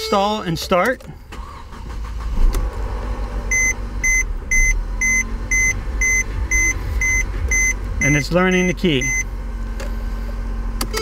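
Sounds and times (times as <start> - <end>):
car engine idling unsteadily: 0.0 - 11.0
electronic warning beep: 3.5 - 9.3.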